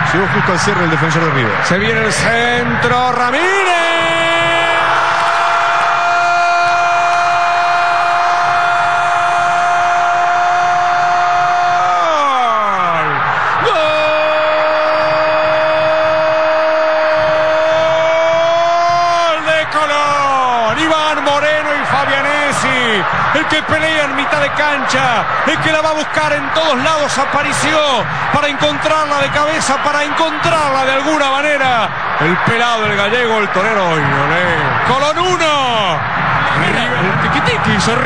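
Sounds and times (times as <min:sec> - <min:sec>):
stadium crowd noise: 0:00.0 - 0:38.0
man shouting excitedly: 0:03.3 - 0:05.0.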